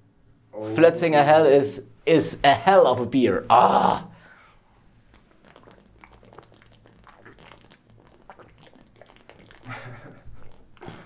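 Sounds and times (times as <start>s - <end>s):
man gulping a drink: 5.1s - 11.0s.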